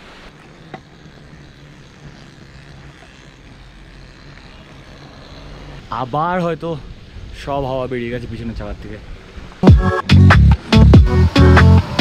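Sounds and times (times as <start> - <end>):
bike tyres rolling on wet road: 0.0 - 9.6.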